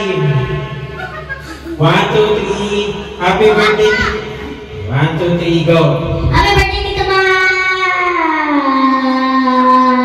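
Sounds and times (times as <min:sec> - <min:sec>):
boy singing a long note: 0:06.6 - 0:10.0.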